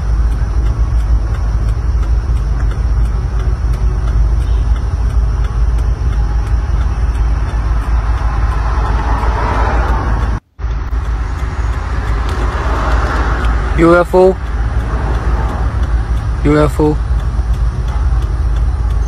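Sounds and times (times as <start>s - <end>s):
outdoor roar with low rumble: 0.0s - 19.0s.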